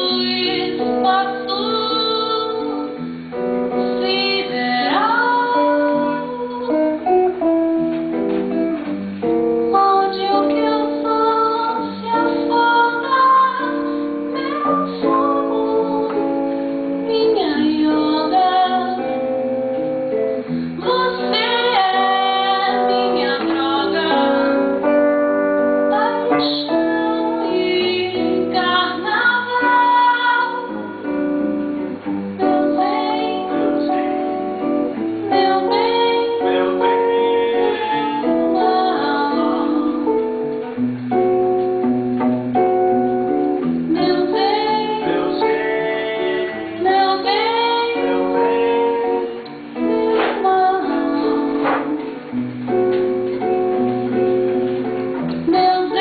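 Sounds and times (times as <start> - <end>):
woman singing: 0.0 - 8.6, 9.2 - 40.8, 42.2 - 52.4, 53.2 - 56.0
acoustic guitar chords: 0.0 - 56.0.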